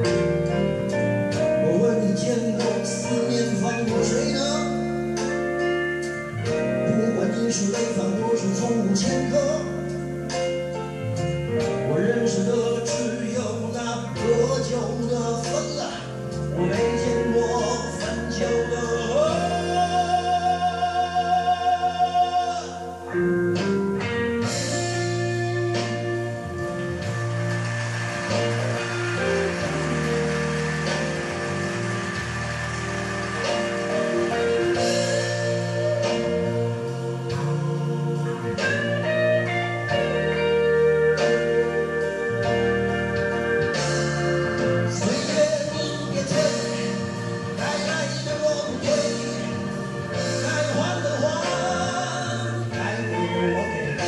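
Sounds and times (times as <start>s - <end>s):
bass line: 0.0s - 54.0s
held chords: 0.0s - 54.0s
musical accompaniment: 0.0s - 54.0s
man singing into a microphone: 1.5s - 4.9s, 6.7s - 10.0s, 11.8s - 23.1s, 44.9s - 54.0s.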